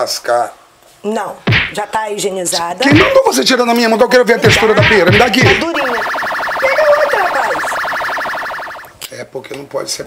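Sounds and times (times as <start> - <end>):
pulsing electronic buzz: 5.6 - 8.9.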